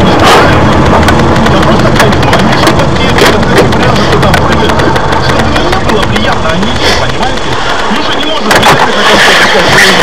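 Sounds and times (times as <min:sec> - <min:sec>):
car road and engine noise: 0:00.0 - 0:10.0
indistinct voices talking: 0:00.0 - 0:10.0.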